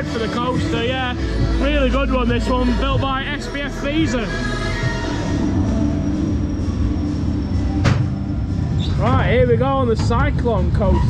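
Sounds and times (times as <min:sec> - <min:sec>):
ride machinery rumble and hum: 0:00.0 - 0:11.0.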